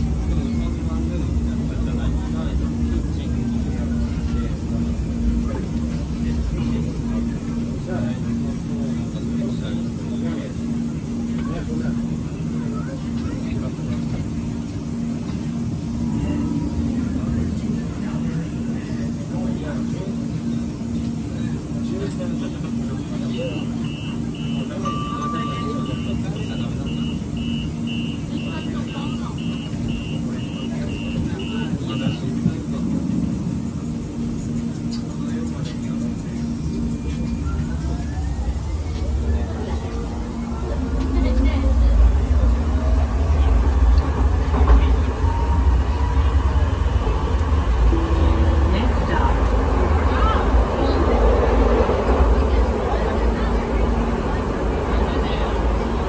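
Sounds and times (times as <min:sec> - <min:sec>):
train running rumble: 0:00.0 - 0:56.0.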